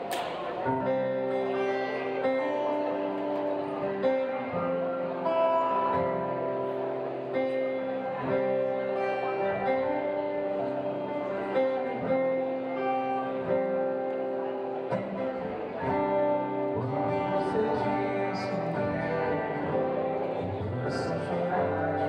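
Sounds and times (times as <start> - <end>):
strummed acoustic guitar: 0.0 - 22.0.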